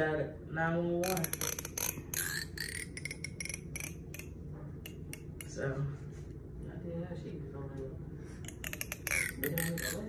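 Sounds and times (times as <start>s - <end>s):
plastic comb clicking: 1.0s - 5.6s.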